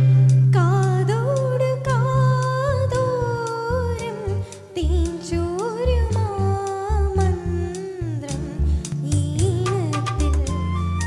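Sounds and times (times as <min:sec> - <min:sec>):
woman singing into microphone: 0:00.4 - 0:11.0.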